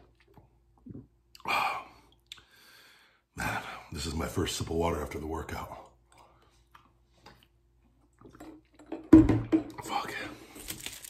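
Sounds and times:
man gulping water: 0.0s - 2.5s, 6.0s - 9.1s.

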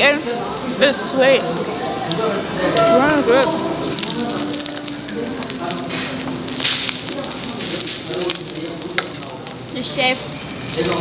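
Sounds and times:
meat sizzling and crackling on grill: 0.0s - 11.0s.

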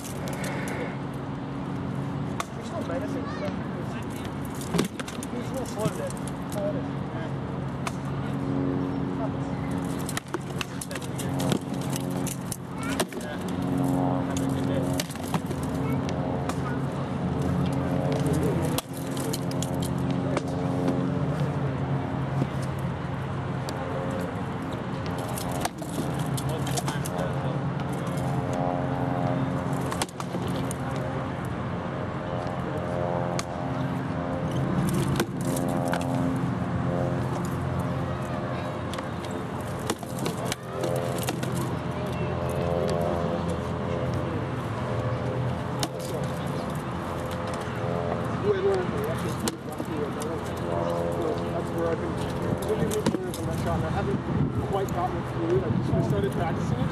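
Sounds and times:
indistinct background talk: 0.0s - 56.9s.

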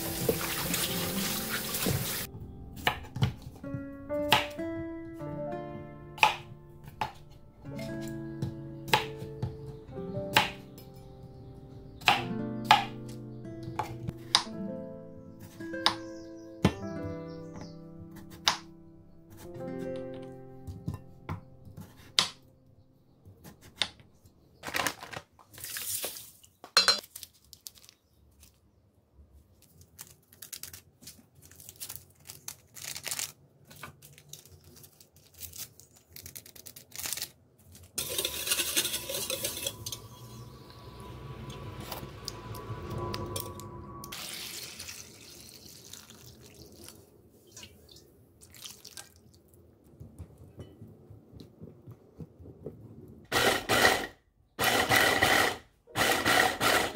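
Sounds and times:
water pouring into metal bowl: 0.0s - 2.3s, 44.1s - 47.7s
bowls clinking: 38.0s - 40.6s.

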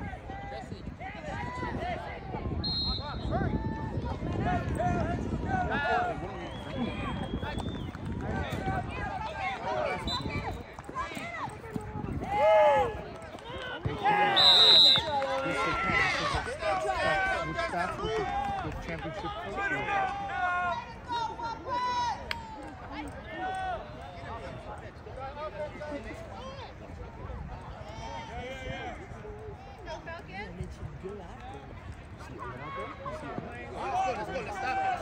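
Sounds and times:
spectators talking and calling out: 0.0s - 35.0s
referee's whistle blast: 2.6s - 3.4s, 14.2s - 15.2s
loud shout: 12.2s - 22.7s.

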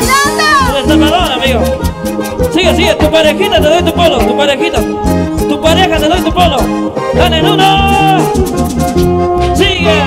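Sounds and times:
bass: 0.0s - 10.0s
nylon-string guitar lead: 0.0s - 10.0s
percussion steady beat: 0.0s - 10.0s.

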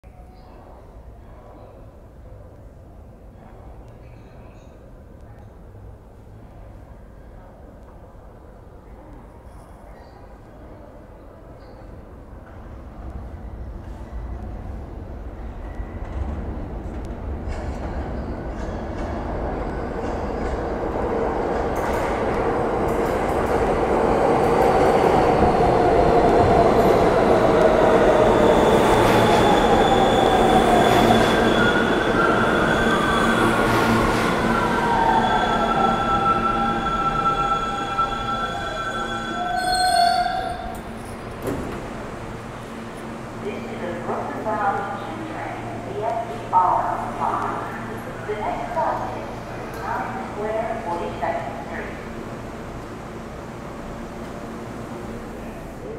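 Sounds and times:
subway train rumbling: 0.0s - 55.9s
train braking whine: 28.2s - 41.2s.

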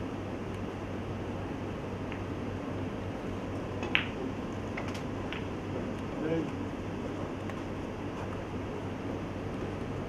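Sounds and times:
low room hum: 0.0s - 10.0s
snooker balls clicking: 3.8s - 5.5s.

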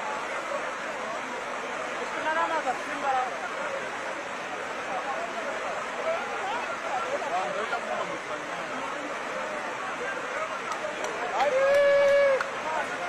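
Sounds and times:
flooded river rushing: 0.0s - 13.0s.

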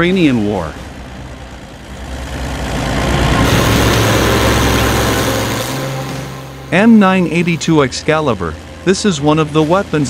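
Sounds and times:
tracked vehicle engine humming: 0.0s - 10.0s
rushing noise: 1.0s - 8.3s.

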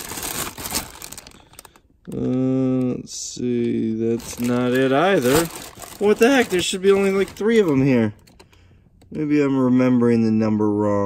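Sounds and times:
plastic bags crinkling: 0.0s - 8.6s
adapters and cords rattling: 4.1s - 8.6s.

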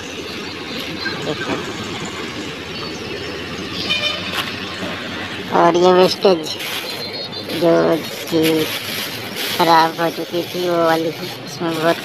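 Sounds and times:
low rumbling noise: 0.0s - 12.0s.

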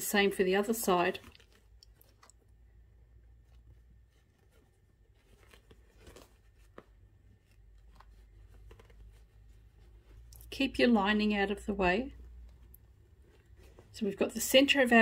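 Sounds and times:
rustling of fabric being handled: 0.0s - 15.0s.

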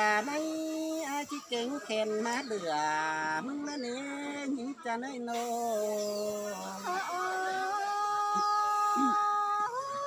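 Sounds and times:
person singing long notes: 3.1s - 10.0s.

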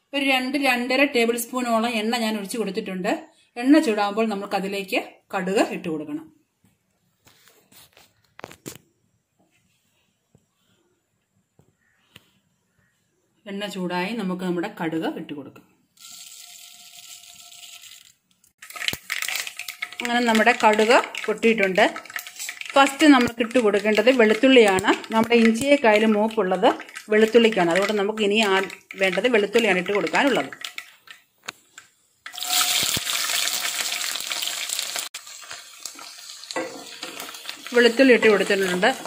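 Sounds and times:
hot oil crackling and spattering: 16.0s - 39.0s.

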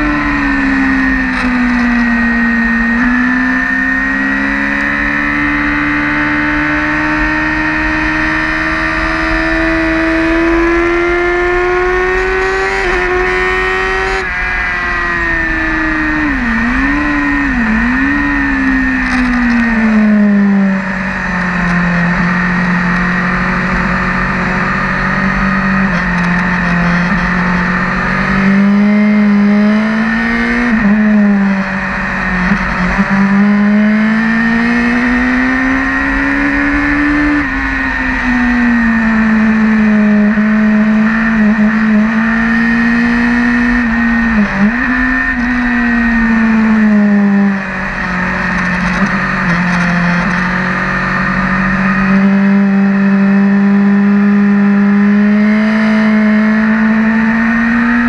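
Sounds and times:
racing motorcycle engine: 0.0s - 58.0s.

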